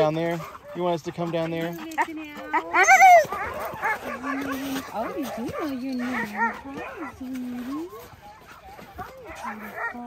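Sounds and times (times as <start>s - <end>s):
dog high-pitched calling: 2.0s - 7.1s.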